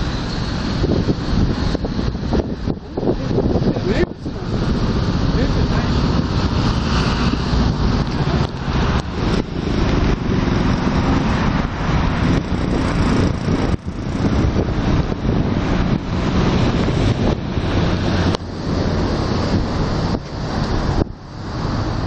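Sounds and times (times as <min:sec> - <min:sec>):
cars and vans passing: 0:00.0 - 0:22.0
wind buffeting microphone: 0:00.0 - 0:22.0.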